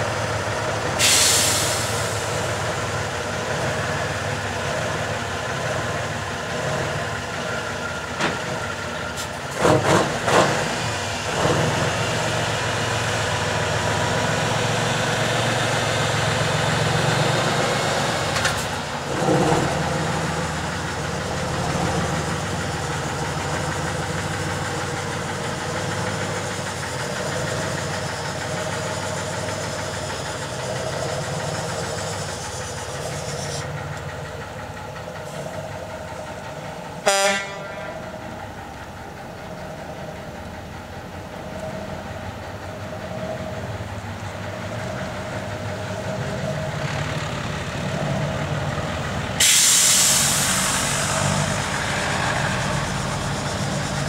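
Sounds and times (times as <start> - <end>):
diesel truck driving past: 0.0 - 54.0
truck horn toot: 37.0 - 38.1.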